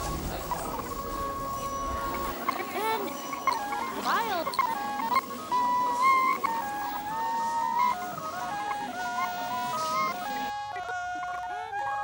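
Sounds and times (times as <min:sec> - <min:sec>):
simple melody of held notes: 0:00.0 - 0:12.0.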